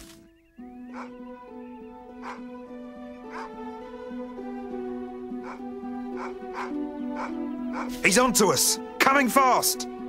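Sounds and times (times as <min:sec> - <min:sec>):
music with long held notes: 0:00.2 - 0:10.0
dog barking: 0:00.9 - 0:01.2, 0:02.2 - 0:02.5, 0:03.3 - 0:03.6, 0:05.4 - 0:08.0.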